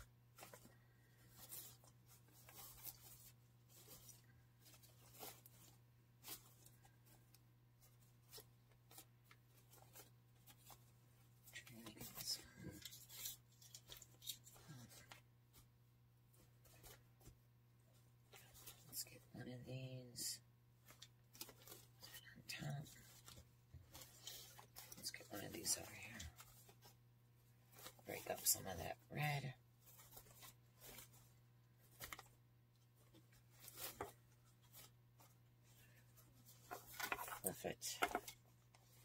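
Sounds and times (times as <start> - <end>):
ribbon rustling and crinkling: 0.0 - 19.3, 20.1 - 39.0.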